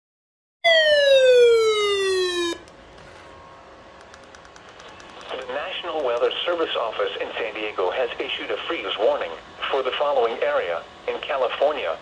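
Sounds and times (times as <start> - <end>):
buzzy siren-like alert tone: 0.6 - 2.7
faint radio hiss: 5.2 - 12.0.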